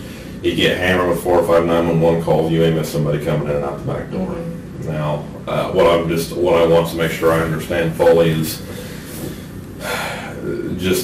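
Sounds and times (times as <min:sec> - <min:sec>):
person breathing in: 0:00.0 - 0:00.4, 0:08.6 - 0:10.5
person speaking: 0:00.4 - 0:11.0.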